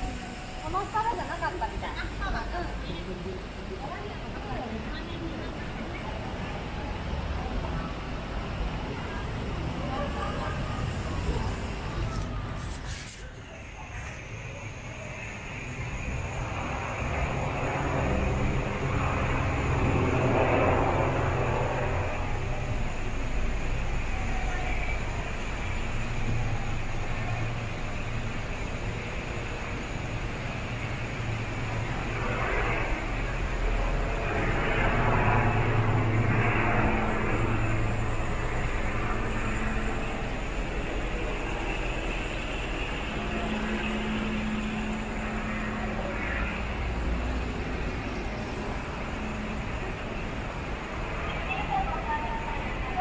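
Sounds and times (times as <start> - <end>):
road traffic rumble: 0.0 - 53.0.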